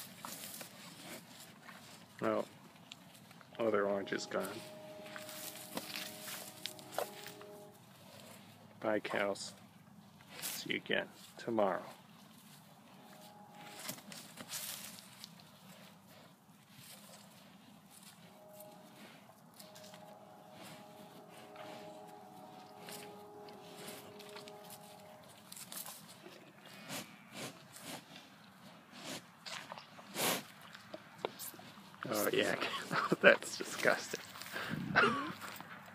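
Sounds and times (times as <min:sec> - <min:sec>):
cattle breathing: 0:00.0 - 0:02.2, 0:04.5 - 0:08.8, 0:12.2 - 0:30.6, 0:34.3 - 0:35.9
cattle shuffling on grass: 0:00.0 - 0:09.3, 0:12.0 - 0:29.2.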